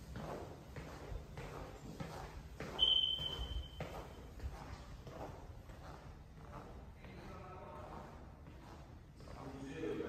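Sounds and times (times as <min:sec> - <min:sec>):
footsteps on wooden floor: 0:00.0 - 0:09.6
high squeak: 0:02.8 - 0:04.0.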